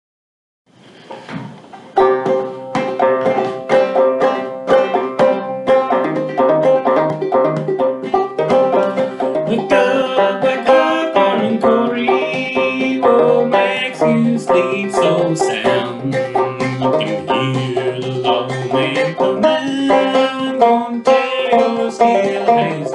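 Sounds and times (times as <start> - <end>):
banjo plucking: 1.1 - 22.9.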